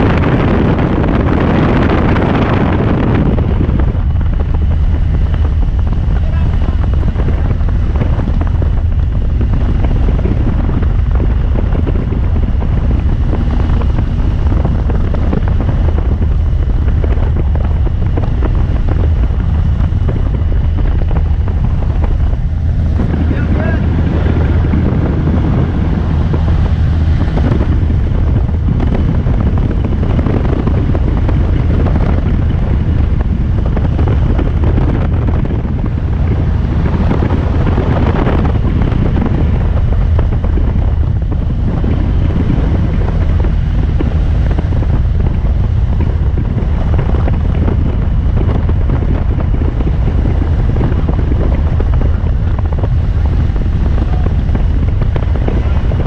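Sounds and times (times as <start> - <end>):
airplane engine and propeller drone: 0.0 - 56.0
wind noise: 0.0 - 56.0.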